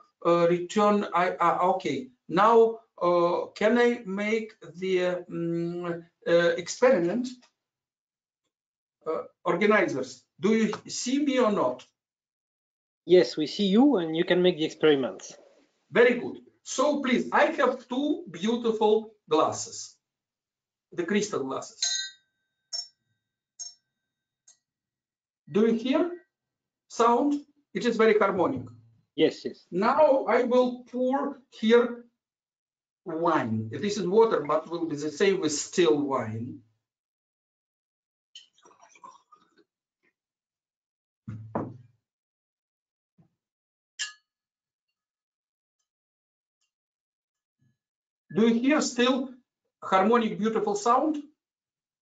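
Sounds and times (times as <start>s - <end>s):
crystal glasses clinking: 21.8s - 22.2s
crystal glass ringing: 21.8s - 22.9s
dull knock: 41.3s - 41.8s.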